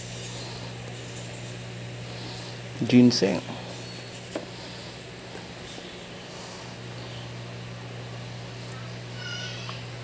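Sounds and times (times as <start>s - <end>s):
steady low hum: 0.0s - 10.0s
high-pitched animal call: 8.8s - 9.8s.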